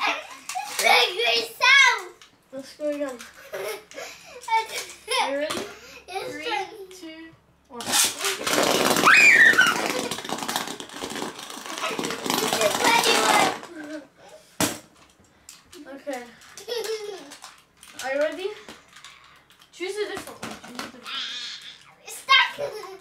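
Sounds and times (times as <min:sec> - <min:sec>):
spinning tops rattling on plastic: 0:07.8 - 0:14.0, 0:15.7 - 0:21.0.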